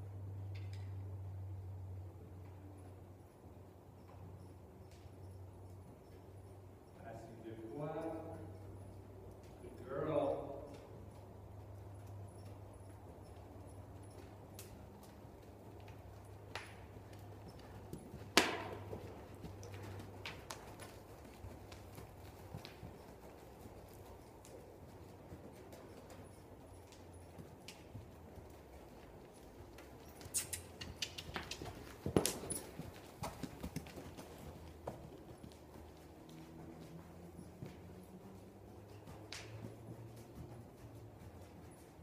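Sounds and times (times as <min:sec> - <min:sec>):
faint steady hum: 0:00.0 - 0:42.0
horse hooves on sand: 0:04.0 - 0:42.0.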